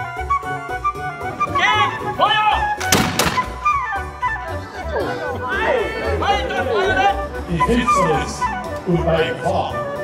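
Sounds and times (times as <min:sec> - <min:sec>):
musket volley: 0:02.7 - 0:04.0.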